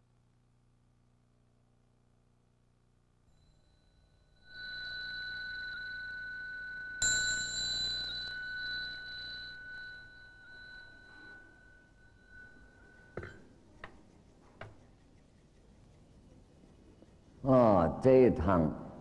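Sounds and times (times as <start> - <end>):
metal bell ringing: 3.4 - 13.7.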